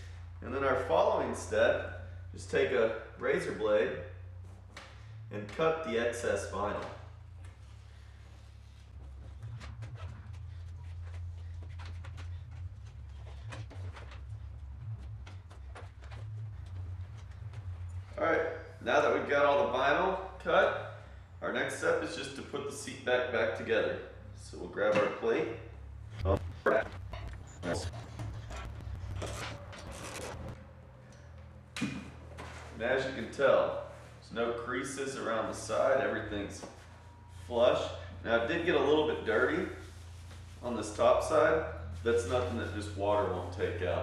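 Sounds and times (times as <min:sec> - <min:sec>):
steady low hum: 0:00.0 - 0:44.0
vinyl crinkling: 0:26.4 - 0:30.6
plastic scraping and rubbing: 0:27.0 - 0:30.6.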